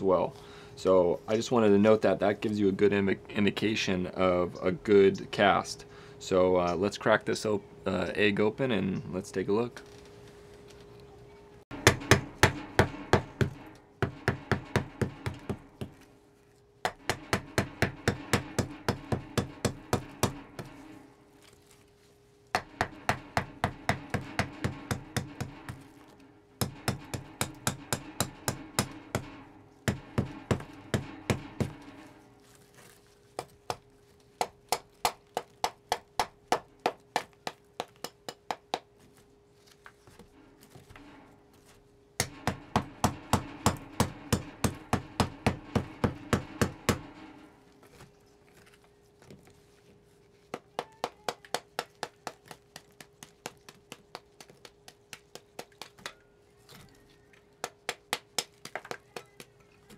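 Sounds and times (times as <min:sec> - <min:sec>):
faint steady hum: 0:00.0 - 0:59.9
hammer chipping plaster: 0:11.7 - 0:16.0, 0:16.8 - 0:20.8, 0:22.5 - 0:26.0, 0:26.6 - 0:31.9, 0:33.4 - 0:38.9, 0:42.2 - 0:47.1, 0:50.5 - 0:56.2.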